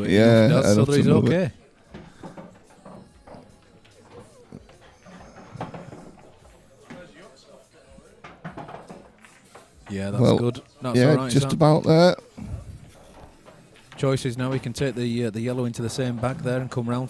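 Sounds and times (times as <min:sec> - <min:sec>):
murmur of bar chatter: 0:00.0 - 0:17.0
pool balls clicking: 0:00.0 - 0:17.0.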